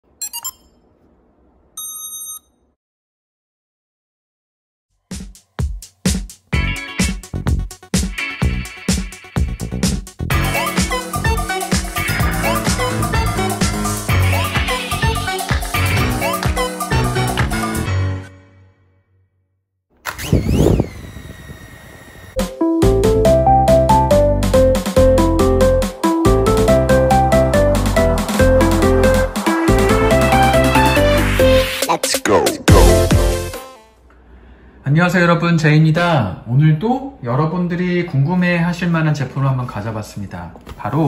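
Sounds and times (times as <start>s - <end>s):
electronic beeps: 0.2s - 0.8s
drone motors whining: 20.0s - 22.4s.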